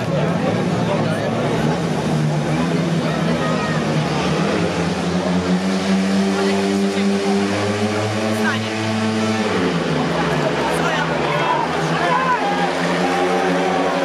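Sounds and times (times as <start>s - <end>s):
motorcycle engines revving: 0.0s - 14.0s.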